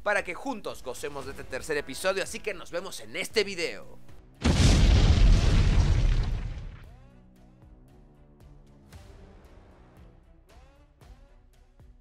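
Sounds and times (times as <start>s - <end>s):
explosion boom with deep rumble: 4.4s - 7.0s.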